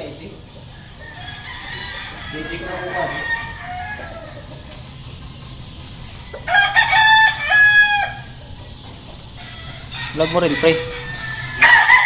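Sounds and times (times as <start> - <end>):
rooster crowing: 0.7 - 4.6, 6.4 - 8.4, 9.4 - 12.0.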